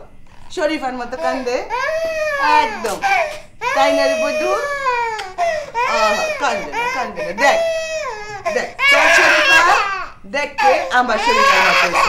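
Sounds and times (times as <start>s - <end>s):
adult voices: 0.6s - 12.0s
baby crying: 1.1s - 12.0s.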